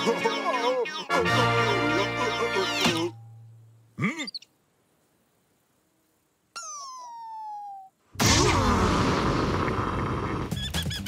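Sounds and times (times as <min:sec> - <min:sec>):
cartoon squeak sliding down: 0:06.6 - 0:07.9.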